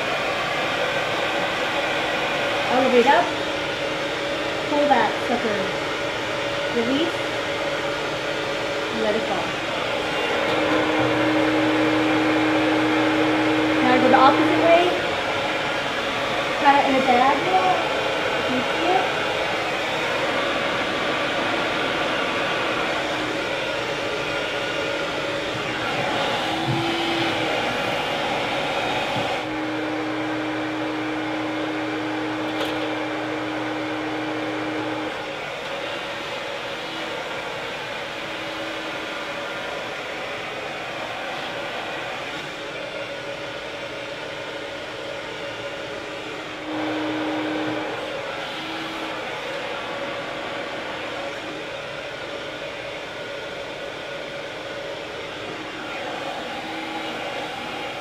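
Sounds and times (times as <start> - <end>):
hair dryer blowing: 0.0 - 58.0.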